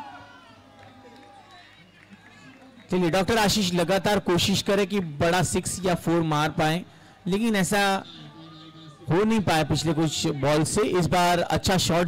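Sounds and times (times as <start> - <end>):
background chatter: 0.0 - 11.5
distant players calling out: 5.6 - 11.0.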